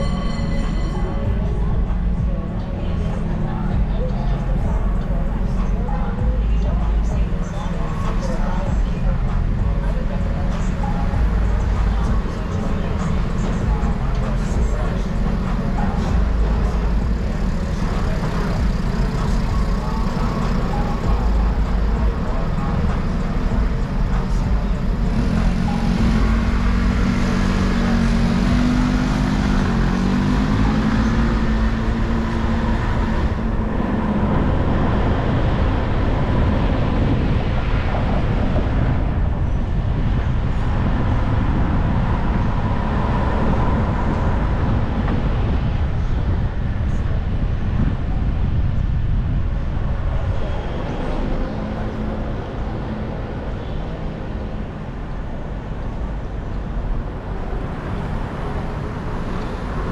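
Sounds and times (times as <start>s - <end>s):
low wavering drone: 0.0s - 53.0s
car engine and tyre rumble: 0.0s - 59.9s.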